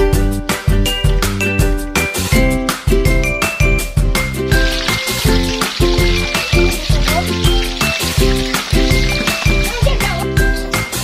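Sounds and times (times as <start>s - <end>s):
upbeat background music: 0.0s - 11.0s
hot oil sizzling in a wok: 4.4s - 11.0s.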